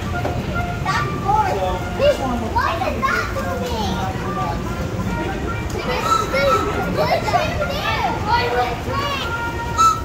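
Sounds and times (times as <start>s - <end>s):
children chattering and calling: 0.0s - 10.0s.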